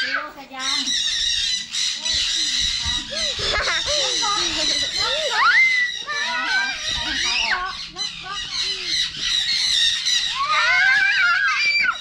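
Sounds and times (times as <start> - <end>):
caged birds chirping and calling: 0.0 - 12.0.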